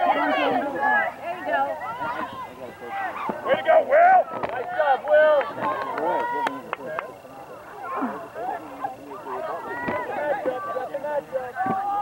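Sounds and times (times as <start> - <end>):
people shouting: 0.0 - 6.7, 7.7 - 12.0.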